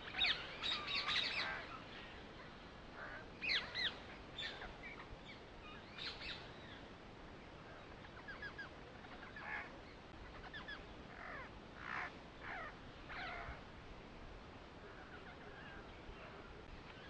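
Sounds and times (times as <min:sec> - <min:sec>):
birds calling faintly: 0:00.0 - 0:17.0
soft steady hiss: 0:00.0 - 0:17.0.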